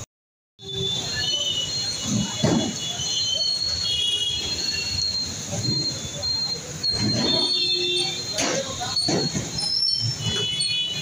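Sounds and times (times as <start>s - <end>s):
street traffic noise: 0.0s - 11.0s
high thin squealing tones: 0.6s - 11.0s.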